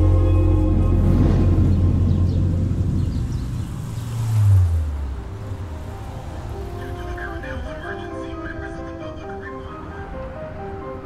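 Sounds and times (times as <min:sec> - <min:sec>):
deep low rumble: 0:00.0 - 0:05.4.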